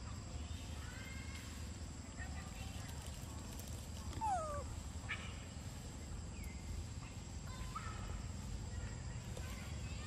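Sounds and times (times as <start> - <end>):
faint chirp: 4.1 - 8.0.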